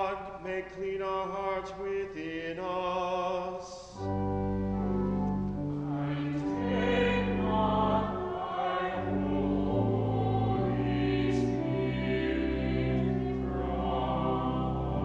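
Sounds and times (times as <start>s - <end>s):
choir singing in harmony: 0.0s - 15.0s.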